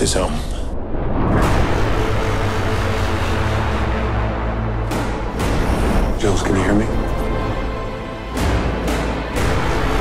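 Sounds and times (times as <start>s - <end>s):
steady low drone: 0.0s - 10.0s.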